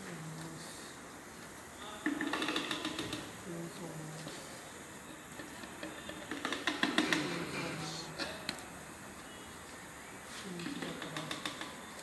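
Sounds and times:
machine rapid mechanical clicking: 0:02.0 - 0:03.4, 0:05.5 - 0:07.4, 0:10.6 - 0:12.0.

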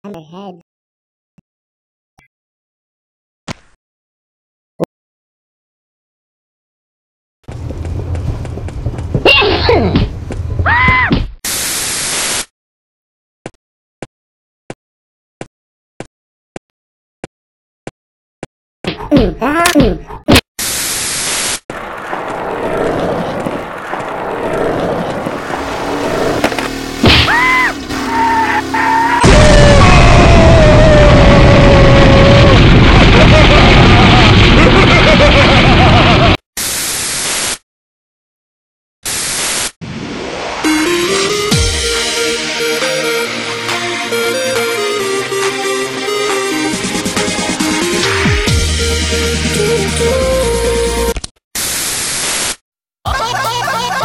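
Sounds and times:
skateboard wheels rolling on pavement: 0:07.5 - 0:09.3, 0:10.0 - 0:10.7, 0:21.7 - 0:29.0
loud dense rumble: 0:07.5 - 0:10.6, 0:21.8 - 0:36.3.

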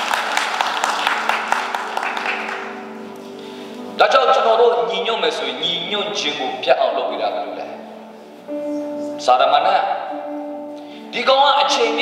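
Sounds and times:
people clapping: 0:00.0 - 0:02.9
sustained keyboard chord: 0:00.4 - 0:12.0.

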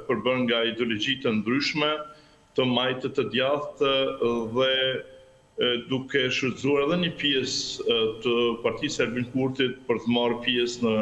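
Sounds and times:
man talking: 0:00.0 - 0:05.0, 0:05.6 - 0:11.0.

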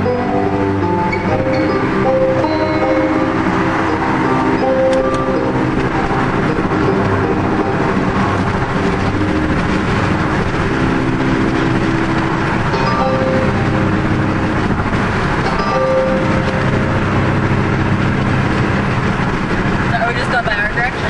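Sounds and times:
car road and tyre noise: 0:00.0 - 0:21.0.

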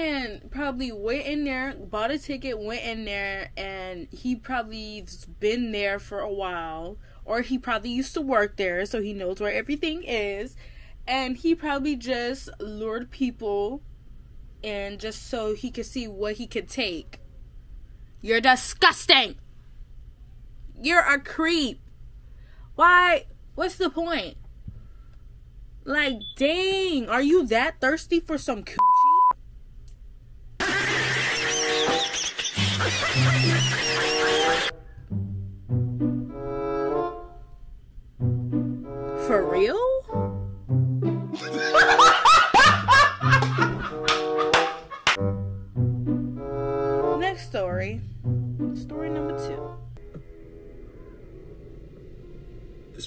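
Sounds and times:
censor bleep: 0:26.2 - 0:26.4, 0:28.8 - 0:29.4
music with high chirps: 0:30.7 - 0:37.4, 0:38.2 - 0:39.3
low background rumble: 0:45.2 - 0:53.0.

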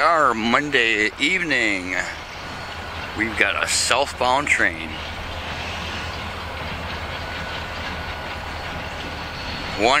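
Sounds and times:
distant diesel locomotive rumble: 0:00.0 - 0:10.0.

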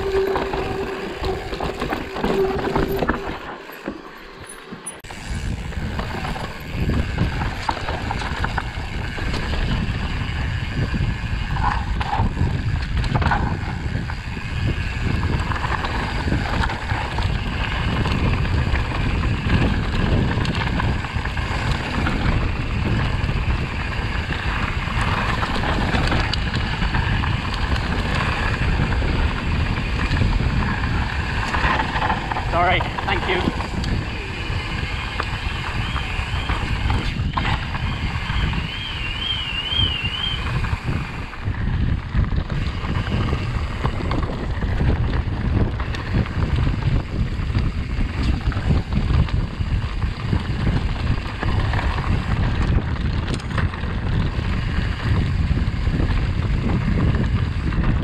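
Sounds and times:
bike rattling and knocking: 0:00.0 - 0:58.0
bike tyres rumbling over stones: 0:00.0 - 0:58.0.

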